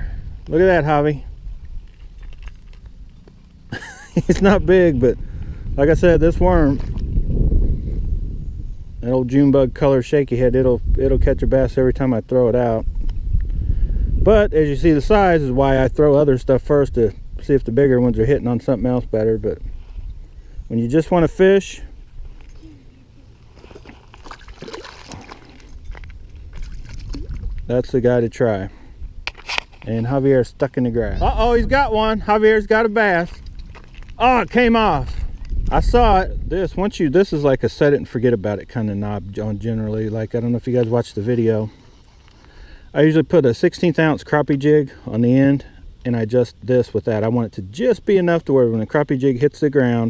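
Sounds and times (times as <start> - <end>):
wind rumble on microphone: 0.0 - 40.7
light water splashing: 23.4 - 27.7.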